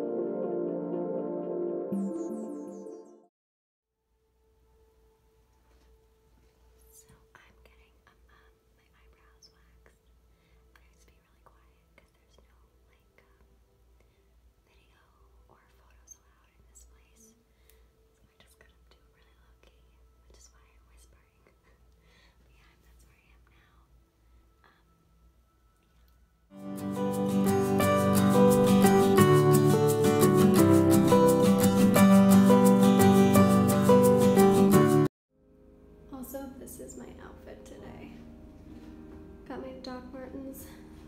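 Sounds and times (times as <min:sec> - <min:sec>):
low steady hum: 0:35.4 - 0:41.0.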